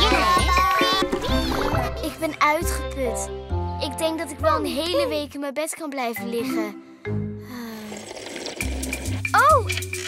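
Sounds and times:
soft cartoon background music: 0.0 - 10.0
bubbly liquid sound effect: 7.6 - 10.0.

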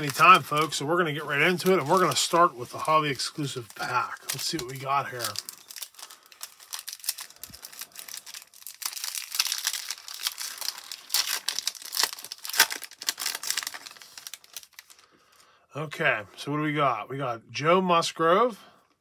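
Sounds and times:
foil wrapper crinkling: 0.0 - 15.1.

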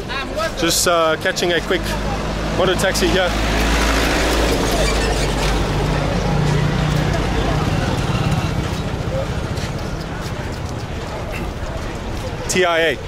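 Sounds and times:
voices of people: 0.0 - 13.0.

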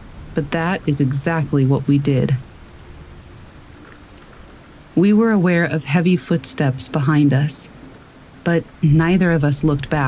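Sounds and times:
steady rain hiss: 0.0 - 10.0.

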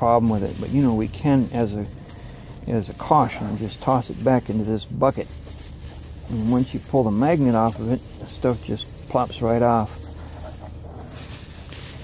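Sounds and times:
plastic bag rustling: 0.0 - 12.0
steady background hiss: 0.0 - 12.0.

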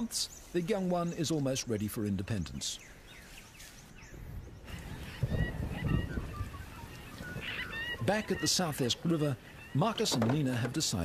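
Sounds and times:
birds whistling: 2.6 - 11.0.

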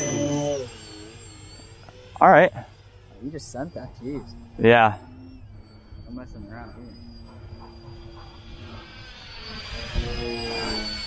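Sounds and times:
model plane propellers whining: 0.0 - 11.0.

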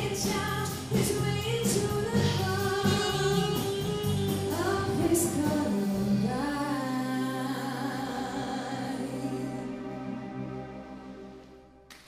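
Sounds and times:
live pop band playing: 0.0 - 7.9
woman singing: 0.0 - 9.8.

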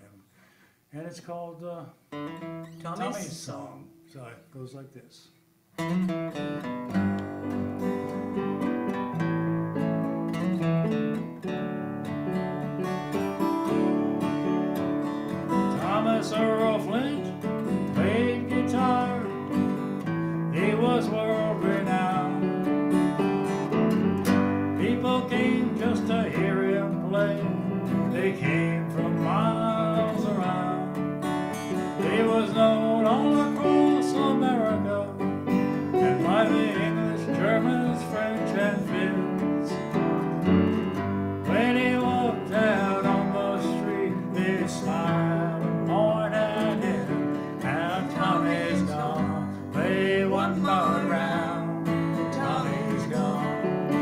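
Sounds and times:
acoustic guitar fingerpicking: 2.1 - 3.4, 5.7 - 54.0.

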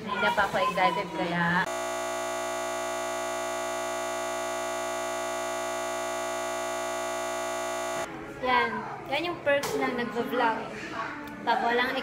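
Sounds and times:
steady electronic buzz: 1.7 - 8.1.

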